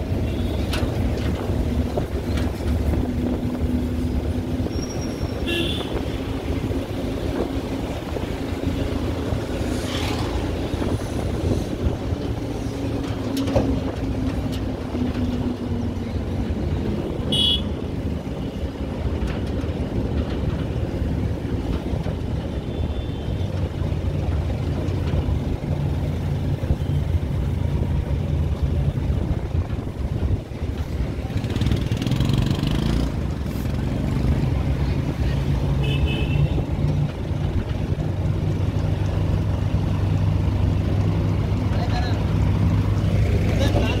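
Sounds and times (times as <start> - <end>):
road and wind noise: 0.0 - 44.0.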